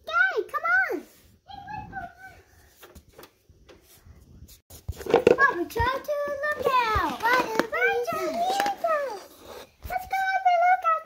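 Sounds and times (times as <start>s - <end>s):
child talking in sing-song voice: 5.4s - 9.2s, 9.9s - 11.0s.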